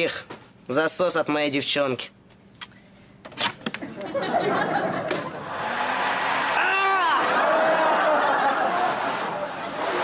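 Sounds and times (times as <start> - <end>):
vacuum cleaner motor running: 5.3 - 10.0.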